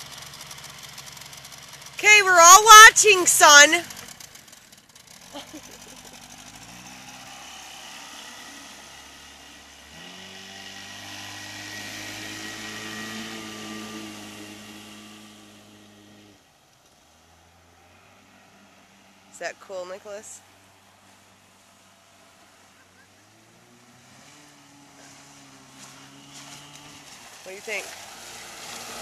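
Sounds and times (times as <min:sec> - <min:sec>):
outboard motor accelerating: 0:00.0 - 0:29.0.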